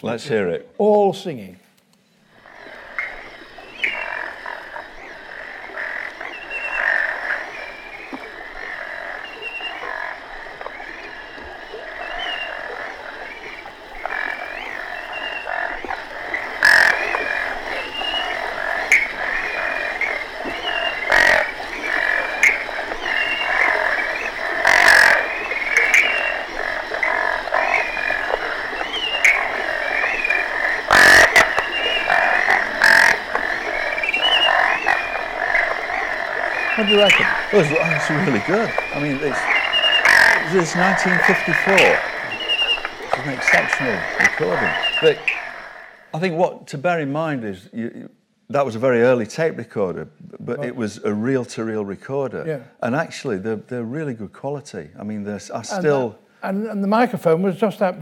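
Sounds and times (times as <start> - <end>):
frogs calling in chorus: 2.1 - 46.4, 55.6 - 56.3.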